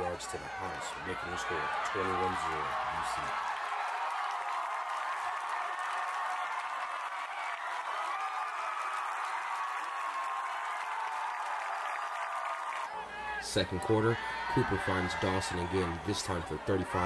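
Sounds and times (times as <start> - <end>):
crowd cheering and clapping: 0.0 - 17.0.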